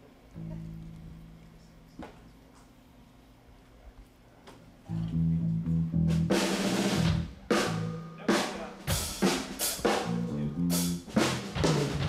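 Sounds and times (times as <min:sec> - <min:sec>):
guitar note ringing: 0:00.4 - 0:02.2.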